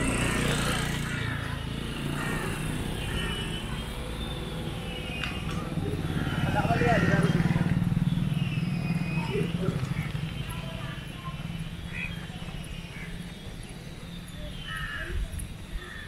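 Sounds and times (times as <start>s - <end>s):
motorcycle engine passing: 0.0s - 14.5s.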